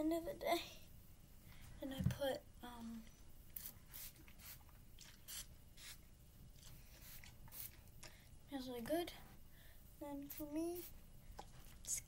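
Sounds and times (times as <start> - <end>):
spray bottle hisses: 5.3 - 6.0, 7.0 - 7.8.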